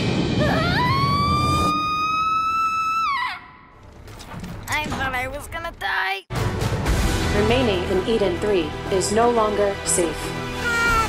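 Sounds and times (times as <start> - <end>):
girl screaming: 0.4 - 3.6, 10.6 - 11.0
background music: 5.5 - 11.0.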